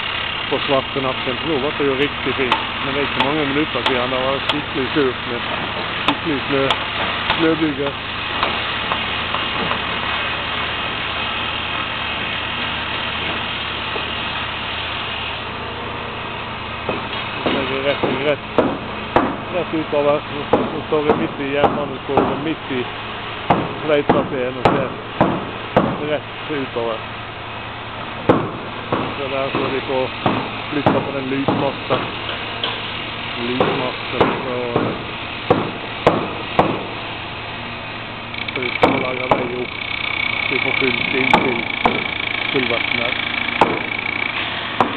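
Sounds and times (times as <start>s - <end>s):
heavy machinery engine running: 0.0s - 44.9s
hammer strikes: 2.4s - 9.9s, 16.8s - 19.7s, 20.4s - 22.6s, 23.5s - 26.1s, 28.3s - 32.9s, 33.5s - 37.0s, 38.4s - 44.9s.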